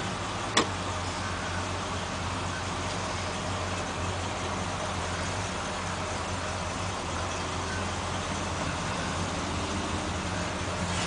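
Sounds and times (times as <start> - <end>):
car engines driving slowly past: 0.0 - 11.0.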